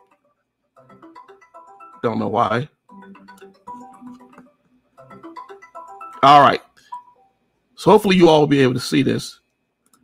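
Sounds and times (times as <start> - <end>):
marimba ringtone: 0.8 - 7.4.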